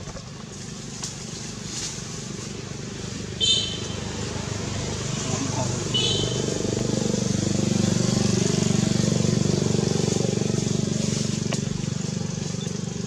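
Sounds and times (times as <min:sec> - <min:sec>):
small engine running: 0:00.0 - 0:13.0.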